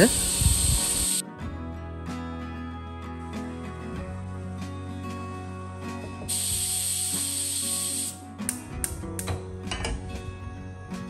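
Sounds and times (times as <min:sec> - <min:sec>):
loud even hiss: 0:00.0 - 0:01.2, 0:06.3 - 0:08.2.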